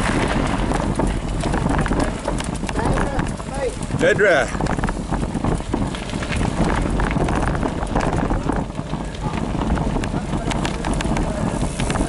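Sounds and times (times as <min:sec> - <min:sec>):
bike rattling over stones: 0:00.0 - 0:12.0
wind rumble on microphone: 0:00.0 - 0:12.0.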